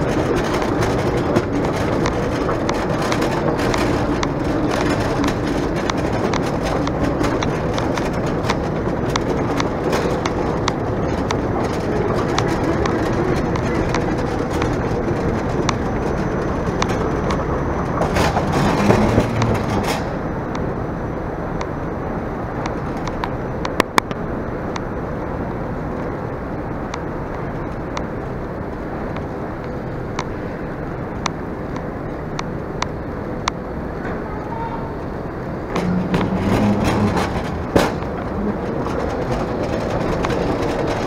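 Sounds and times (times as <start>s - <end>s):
luggage trolley rolling: 0.0s - 41.0s.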